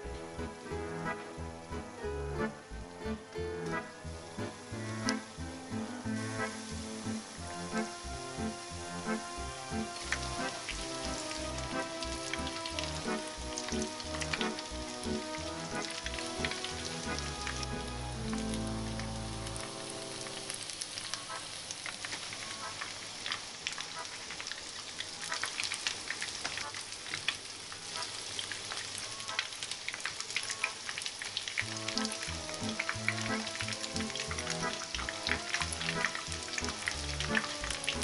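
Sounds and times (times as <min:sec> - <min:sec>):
background music: 0:00.0 - 0:20.7, 0:31.6 - 0:38.0
patties frying in oil: 0:00.0 - 0:38.0.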